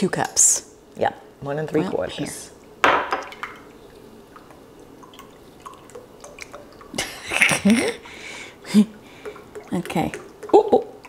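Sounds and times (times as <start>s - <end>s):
liquid trickling into a cup: 2.5s - 11.0s
small drips and splashes: 2.6s - 11.0s.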